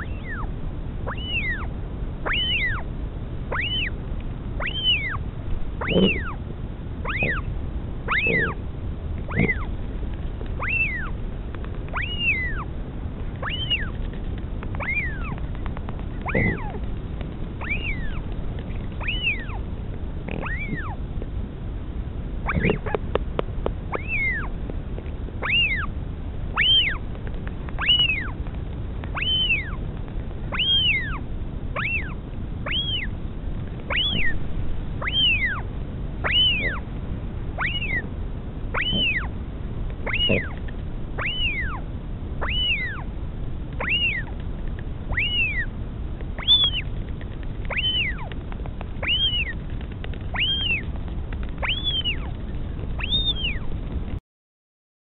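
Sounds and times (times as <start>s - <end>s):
bird chick begging call: 0.0s - 2.9s, 3.5s - 4.0s, 4.6s - 5.2s, 5.8s - 6.4s, 7.0s - 7.5s, 8.1s - 8.6s, 9.3s - 9.7s, 10.6s - 11.2s, 11.9s - 12.7s, 13.4s - 14.0s, 14.8s - 15.4s, 16.2s - 16.8s, 17.6s - 19.6s, 20.3s - 21.0s, 22.4s - 23.0s, 23.9s - 24.5s, 25.4s - 27.0s, 27.8s - 28.4s, 29.1s - 29.8s, 30.5s - 33.1s, 33.9s - 34.4s, 35.0s - 36.8s, 37.6s - 38.1s, 38.7s - 39.3s, 40.0s - 40.6s, 41.2s - 41.8s, 42.4s - 43.1s, 43.8s - 44.3s, 45.1s - 45.7s, 46.4s - 46.9s, 47.6s - 48.4s, 49.0s - 49.7s, 50.3s - 50.9s, 51.6s - 52.4s, 53.0s - 53.7s.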